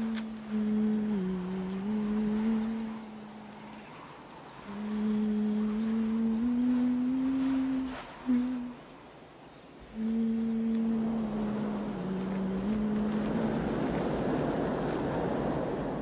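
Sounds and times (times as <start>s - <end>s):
person humming: 0.0s - 3.4s, 4.7s - 8.8s, 9.9s - 13.6s.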